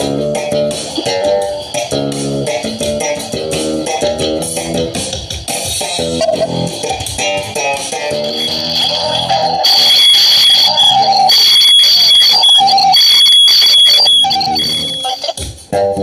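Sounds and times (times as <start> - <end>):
electric bass guitar melody: 0.0 - 5.1, 5.7 - 8.4
pulsing high tone: 0.8 - 3.5, 7.8 - 15.4.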